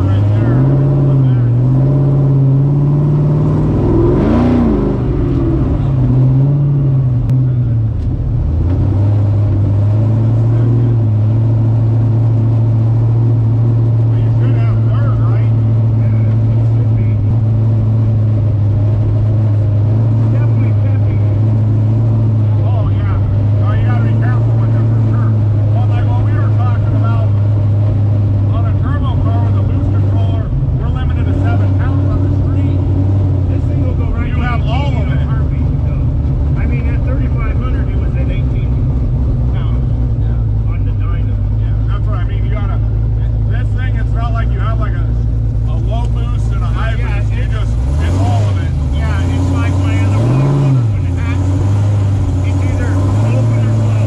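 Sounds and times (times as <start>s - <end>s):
car engine from inside cabin: 0.0s - 54.0s.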